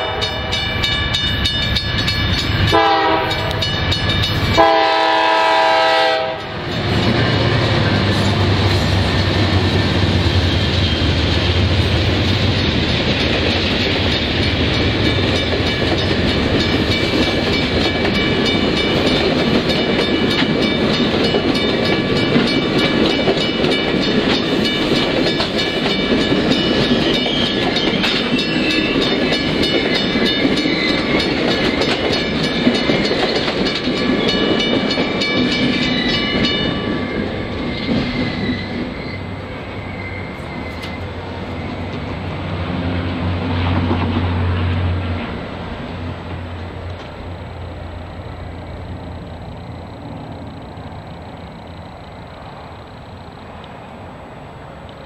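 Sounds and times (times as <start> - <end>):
crossing signal bell ringing: 0.0 - 5.4, 13.2 - 37.8
train wheels rumbling on rail: 0.0 - 55.0.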